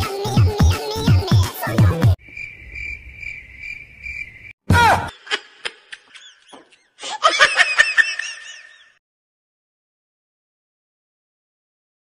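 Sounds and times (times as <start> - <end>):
high-pitched laughter: 4.8 - 9.0.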